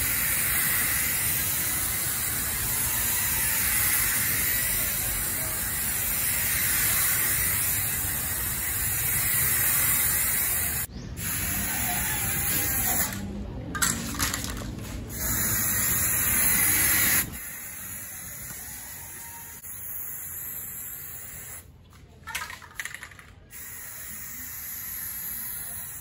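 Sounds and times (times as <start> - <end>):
aerosol spray can hissing: 0.0 - 13.2, 15.1 - 21.6, 23.5 - 26.0.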